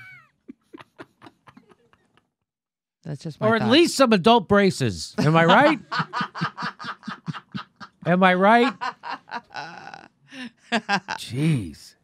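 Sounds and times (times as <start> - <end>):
man laughing hard: 5.2 - 10.1.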